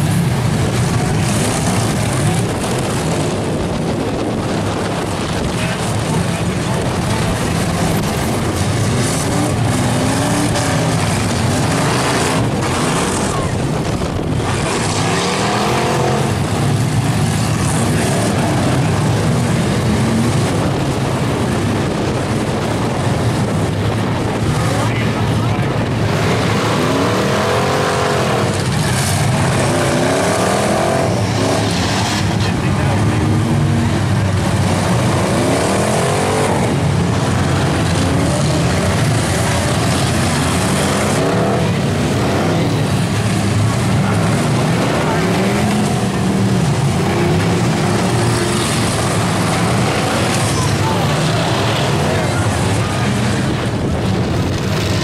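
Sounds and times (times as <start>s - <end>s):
car engines revving: 0.0s - 55.0s
cars crashing: 0.0s - 55.0s.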